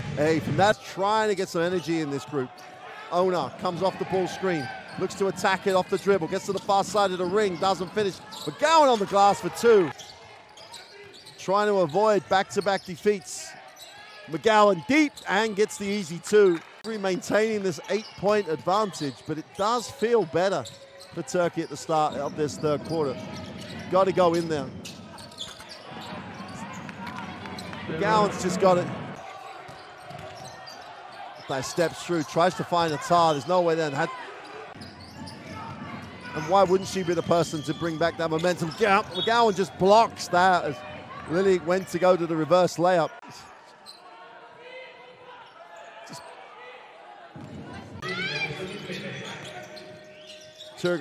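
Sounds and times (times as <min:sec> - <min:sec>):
crowd noise: 0:00.0 - 0:51.0.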